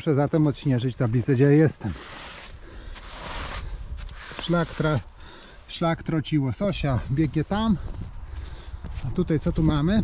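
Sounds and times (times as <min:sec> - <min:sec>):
snow brushed off signboard: 0:01.3 - 0:05.1.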